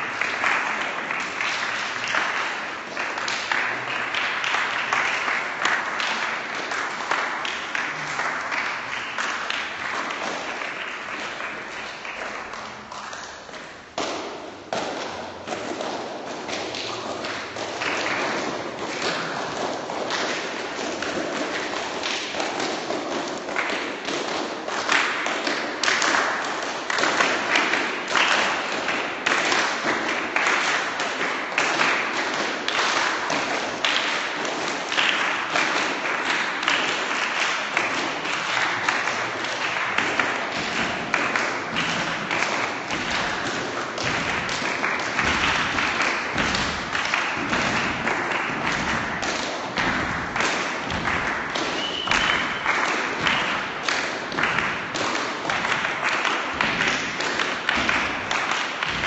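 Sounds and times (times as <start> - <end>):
people clapping hands: 0.0 - 59.0.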